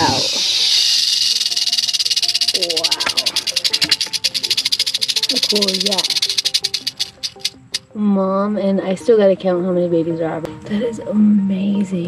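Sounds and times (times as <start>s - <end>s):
rattlesnake rattling: 0.0s - 7.9s
background music: 0.0s - 12.0s.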